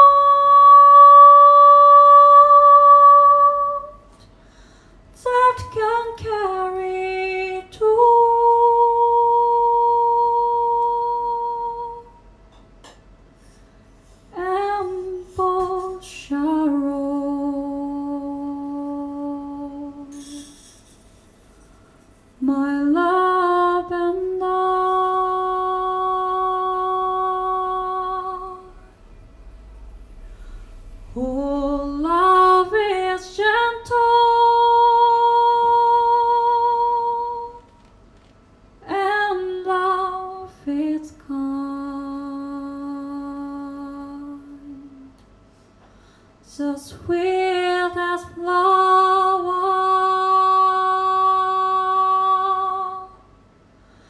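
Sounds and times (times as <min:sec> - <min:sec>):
woman singing a long note: 0:00.0 - 0:04.2, 0:05.2 - 0:12.2, 0:14.4 - 0:20.5, 0:22.4 - 0:37.8, 0:38.8 - 0:45.2, 0:46.4 - 0:53.3
low hum: 0:00.0 - 0:54.0.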